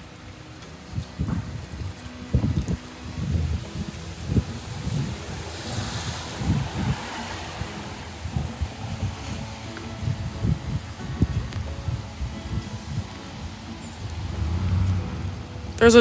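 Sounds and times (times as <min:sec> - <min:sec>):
car tyres passing on wet street: 0:00.0 - 0:16.0
wind buffeting microphone: 0:00.0 - 0:16.0.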